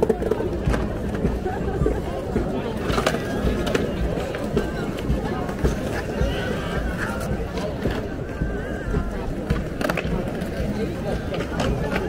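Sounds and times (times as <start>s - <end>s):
crowd chatter: 0.0s - 12.0s
skateboards rolling on stone: 0.0s - 12.0s.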